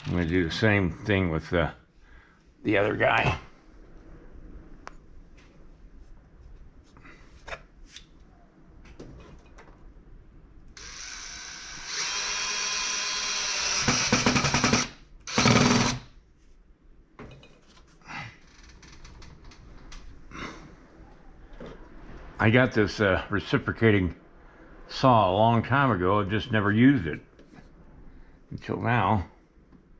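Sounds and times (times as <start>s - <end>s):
cordless drill driving screws: 10.8s - 16.1s.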